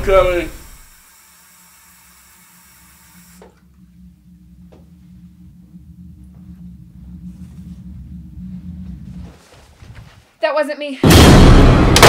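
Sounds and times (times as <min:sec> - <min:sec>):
sink tap running: 0:00.0 - 0:03.6.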